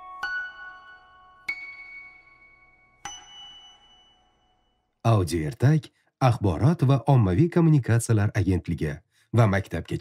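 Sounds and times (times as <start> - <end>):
bell-like chime: 0.0 - 5.0.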